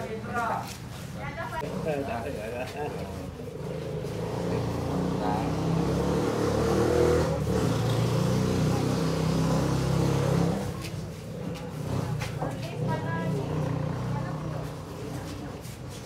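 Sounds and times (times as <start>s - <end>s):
vehicle engine humming: 0.0s - 16.0s.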